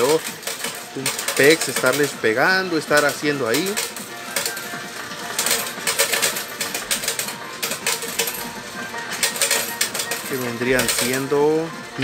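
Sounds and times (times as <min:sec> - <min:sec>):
coins clattering into tray: 0:00.0 - 0:11.4.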